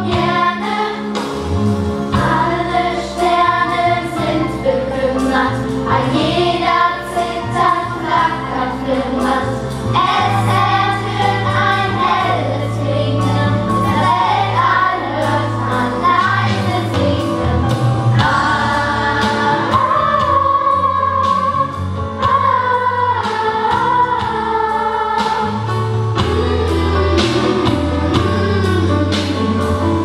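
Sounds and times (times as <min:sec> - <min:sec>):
instrumental accompaniment with bass: 0:00.0 - 0:30.0
children singing in chorus: 0:18.2 - 0:25.7.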